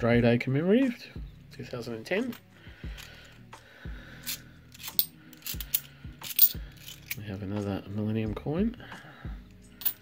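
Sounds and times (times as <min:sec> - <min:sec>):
coins clinking: 0:04.2 - 0:07.3, 0:09.8 - 0:10.0.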